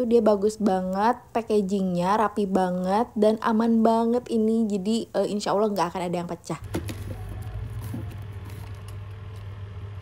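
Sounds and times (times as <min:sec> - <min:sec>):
steady low hum: 0:06.0 - 0:10.0.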